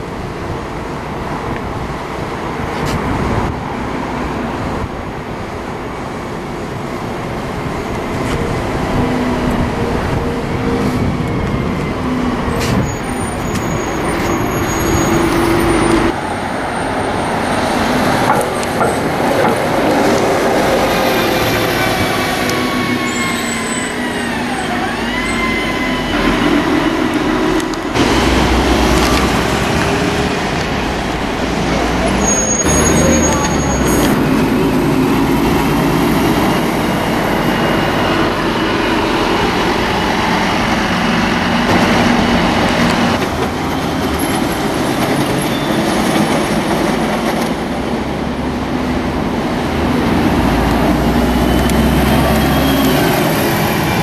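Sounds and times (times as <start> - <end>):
buses driving past: 0.0 - 54.0
street traffic: 0.0 - 54.0.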